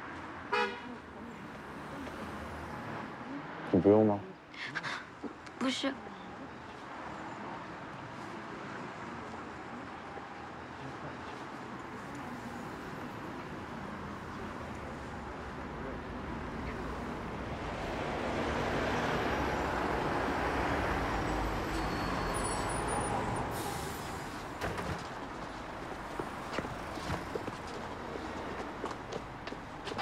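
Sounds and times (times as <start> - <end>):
short air brake hiss: 23.5 - 24.3.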